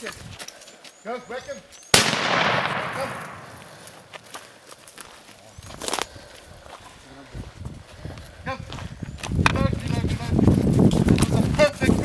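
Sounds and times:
rifle shot echo: 1.9s - 4.2s
sharp crack: 2.0s - 4.4s
footsteps: 2.5s - 12.0s.

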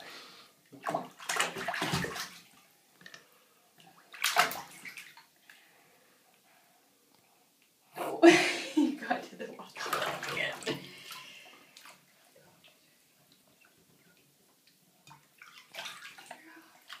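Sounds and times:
bathwater splashing in a bathtub: 0.6s - 3.2s, 3.8s - 5.5s, 9.4s - 17.0s.

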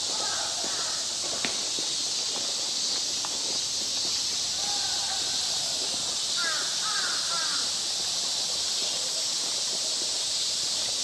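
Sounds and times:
steady high hiss: 0.0s - 11.0s
crow cawing: 0.1s - 1.0s, 6.4s - 7.7s.

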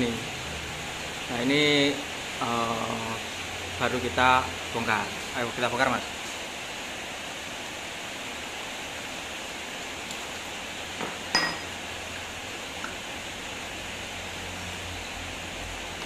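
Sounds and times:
steady hiss: 0.0s - 16.0s.

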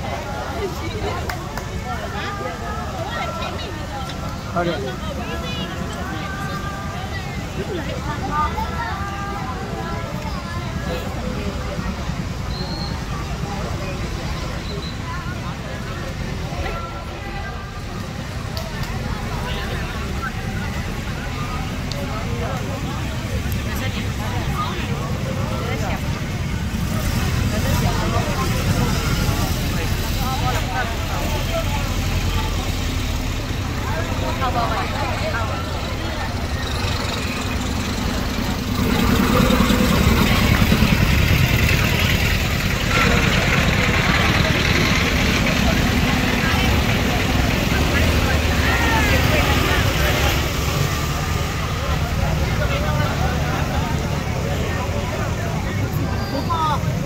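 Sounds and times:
crowd chatter: 0.0s - 57.0s
truck engines rumbling: 0.0s - 57.0s.

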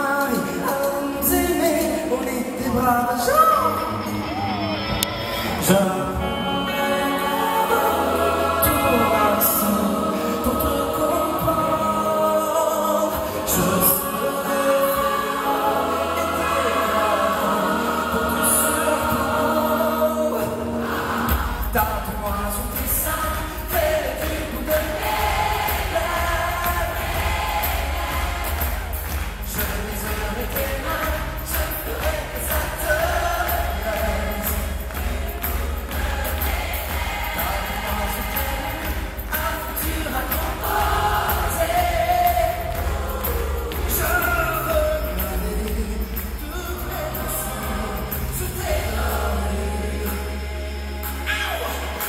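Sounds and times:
choir singing pop song: 0.0s - 4.1s, 5.3s - 52.0s
steady bass: 3.8s - 52.0s
amplified accompaniment: 4.1s - 52.0s
solo voice singing: 5.6s - 28.7s, 37.4s - 52.0s.

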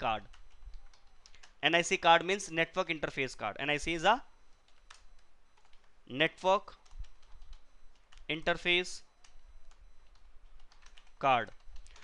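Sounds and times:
faint keyboard keystrokes: 9.2s - 12.0s.

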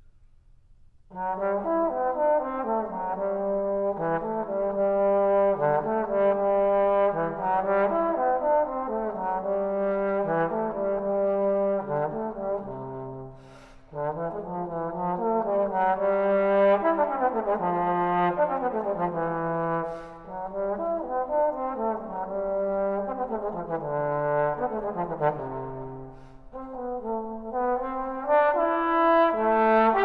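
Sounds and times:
solo trombone melody: 1.1s - 30.0s
quick breath: 13.3s - 14.0s, 19.8s - 20.3s, 26.1s - 26.6s.

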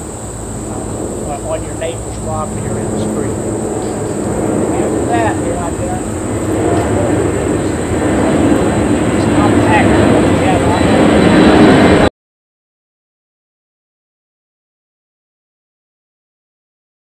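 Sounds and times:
loud steady rumbling: 0.0s - 12.1s
people talking indistinctly: 1.2s - 11.8s.

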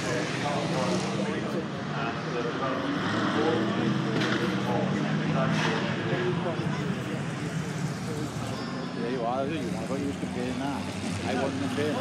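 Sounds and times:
car engine passing by: 0.0s - 8.5s
people talking: 0.0s - 12.0s.

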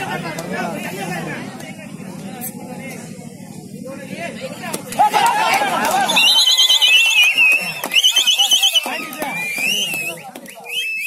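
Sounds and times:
players and crowd shouting: 4.2s - 10.3s
pea whistle trilling: 6.0s - 11.0s
whistled notes: 6.0s - 11.0s.

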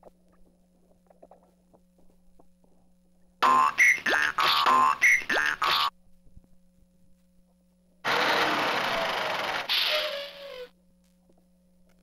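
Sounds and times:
toy electronic rushing noise: 8.1s - 10.7s.

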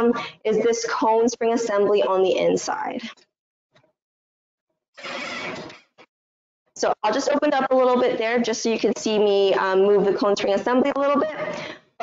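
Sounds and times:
mechanical sliding rasp: 5.0s - 5.8s.

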